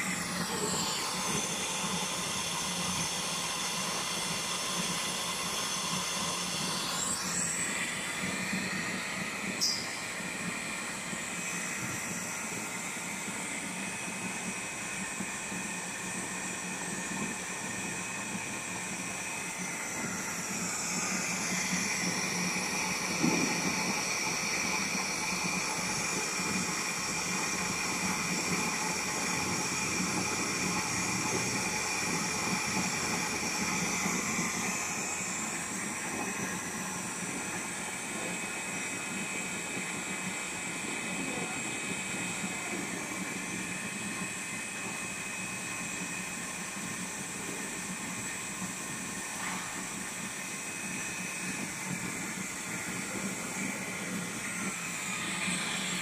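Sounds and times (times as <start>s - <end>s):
hiss from rollers and film: 0.0s - 56.0s
machine whine: 0.0s - 56.0s.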